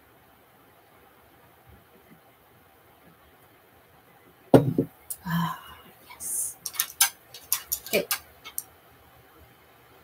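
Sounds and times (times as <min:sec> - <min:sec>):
tools clicking and tapping: 0:06.5 - 0:08.6.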